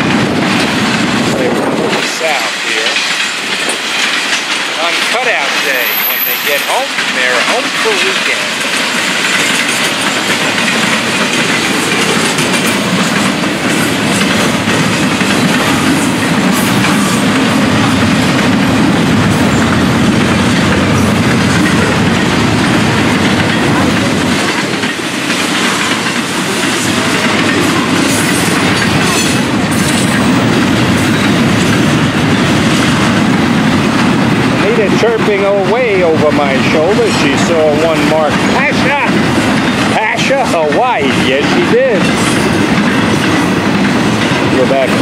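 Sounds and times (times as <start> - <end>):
freight train wheels rumbling: 0.0 - 45.0.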